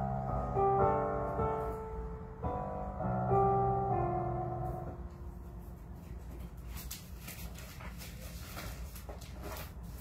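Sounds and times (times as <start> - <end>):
sheet music pages rustling: 5.6 - 10.0.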